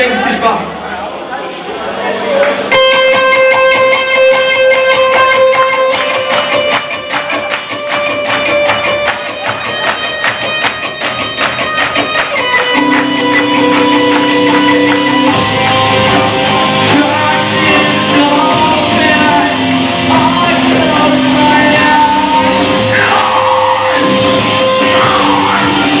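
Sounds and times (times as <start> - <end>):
electric guitar rock music: 2.6 - 26.0.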